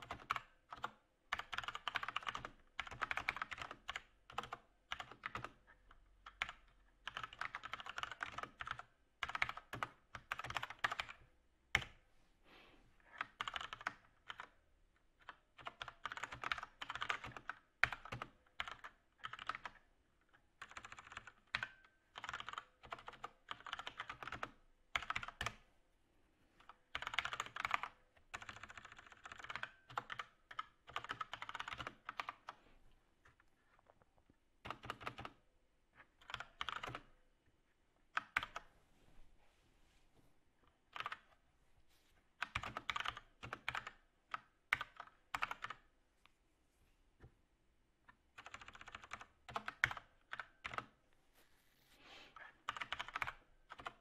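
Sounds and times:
computer keyboard typing: 0.0 - 12.0, 13.1 - 14.6, 15.2 - 19.9, 20.6 - 25.6, 26.6 - 32.6, 34.6 - 35.4, 36.1 - 37.2, 38.1 - 38.7, 40.9 - 41.4, 42.4 - 45.9, 48.3 - 51.0, 52.6 - 54.0.

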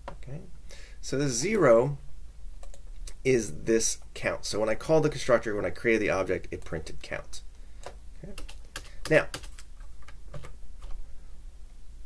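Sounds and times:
computer keyboard keystrokes: 2.6 - 2.8, 7.8 - 11.0.

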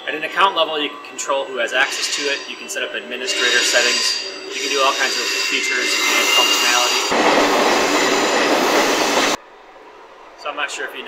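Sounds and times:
train passing platform: 0.0 - 11.0.

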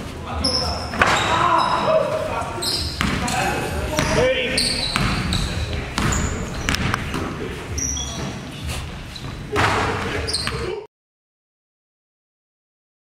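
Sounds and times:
sneaker squeaks: 0.3 - 10.9
basketball bouncing on hardwood floor: 3.0 - 3.3, 4.9 - 5.3, 6.0 - 7.3.

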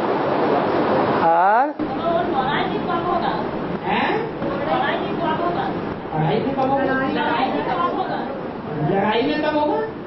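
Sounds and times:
several voices talking at once: 1.2 - 10.0.

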